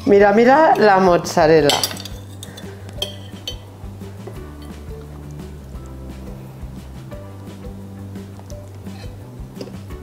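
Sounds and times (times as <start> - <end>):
soft background music: 0.0 - 10.0
cutlery clinking against dishes: 1.7 - 3.7.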